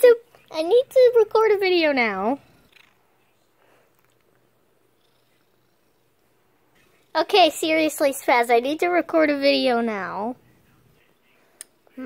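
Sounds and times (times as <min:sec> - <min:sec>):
cat purring: 0:00.0 - 0:11.2.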